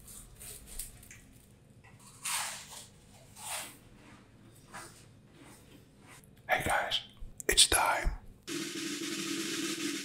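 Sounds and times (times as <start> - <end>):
man whispering: 6.4 - 8.3.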